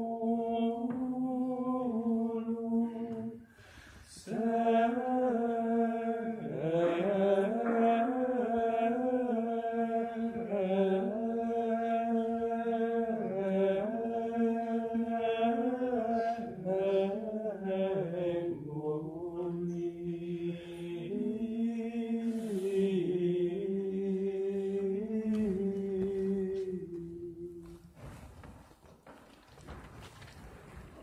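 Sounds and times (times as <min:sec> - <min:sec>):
voices singing plainchant: 0:00.0 - 0:27.8.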